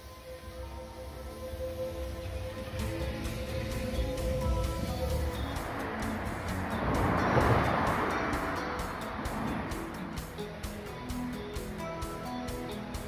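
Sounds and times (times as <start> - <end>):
background music: 0.0 - 13.0
train running past: 0.0 - 13.0.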